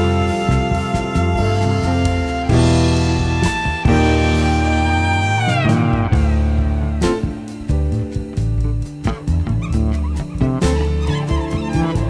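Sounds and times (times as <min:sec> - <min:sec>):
music with beat and bass line: 0:00.0 - 0:12.0.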